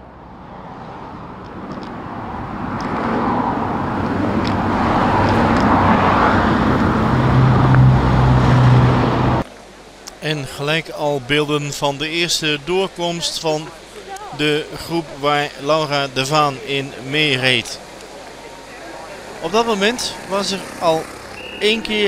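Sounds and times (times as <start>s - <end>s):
motor vehicle engine hum: 0.0s - 10.1s, 12.1s - 22.0s.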